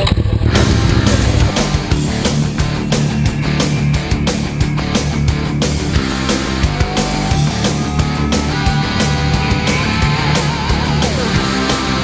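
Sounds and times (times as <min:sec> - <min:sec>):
motorcycle engine running: 0:00.0 - 0:12.0
heavy rock music: 0:00.3 - 0:12.0.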